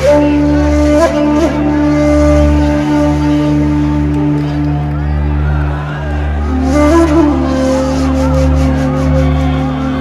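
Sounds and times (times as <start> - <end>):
long held flute-like note: 0.0 - 5.4, 6.3 - 10.0.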